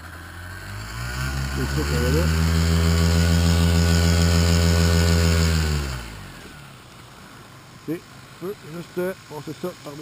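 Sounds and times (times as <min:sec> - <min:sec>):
paramotor engine idling and stopping: 0:00.0 - 0:10.0.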